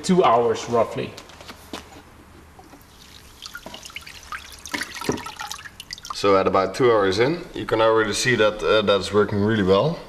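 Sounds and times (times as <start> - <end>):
water splashing and dripping: 2.7 - 6.3.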